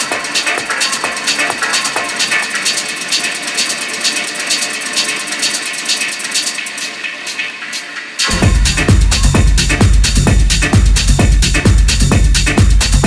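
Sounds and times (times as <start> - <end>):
hi-hats and percussion: 0.0 - 13.0
techno breakdown: 0.0 - 13.0
bright synth layer: 8.2 - 9.9.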